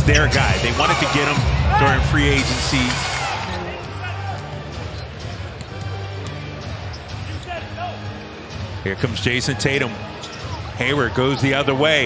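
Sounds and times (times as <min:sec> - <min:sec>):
arena music: 0:00.0 - 0:12.0
crowd noise: 0:00.0 - 0:12.0.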